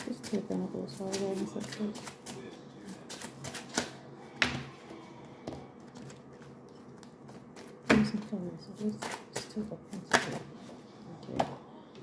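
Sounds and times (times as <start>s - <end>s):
cards being shuffled by hand: 0.0s - 4.0s, 5.7s - 7.8s.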